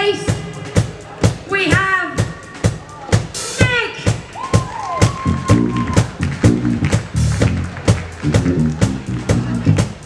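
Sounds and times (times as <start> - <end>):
drum kit beat: 0.0 - 10.0
funky electric bass solo: 5.2 - 10.0.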